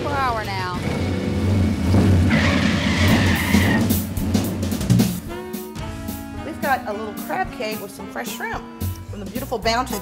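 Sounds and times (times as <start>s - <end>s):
car engine pulling away: 0.0s - 5.4s
high tyre squeal: 1.6s - 4.1s
upright bass: 3.8s - 10.0s
saxophone: 5.2s - 9.2s.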